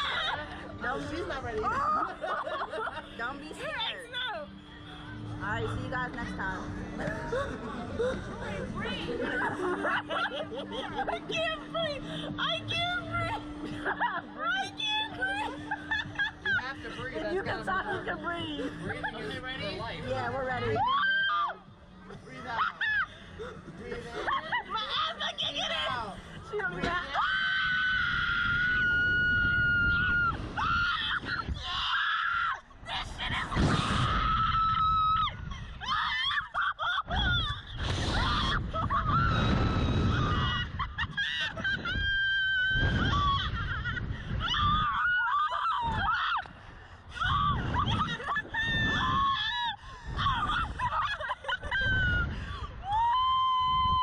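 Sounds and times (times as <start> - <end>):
women laughing and shrieking: 0.0 - 6.4, 7.0 - 54.0
woman screaming: 20.8 - 21.6, 27.1 - 46.5, 47.2 - 52.2, 52.8 - 54.0
wind rushing on microphone: 25.8 - 32.0, 32.6 - 54.0
long steady scream: 27.1 - 36.4.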